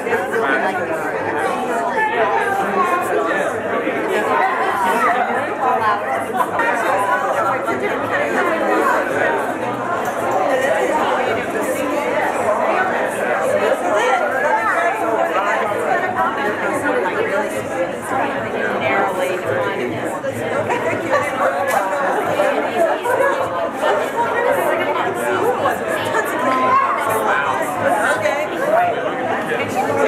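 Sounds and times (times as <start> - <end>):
crowd chatter: 0.0 - 30.0.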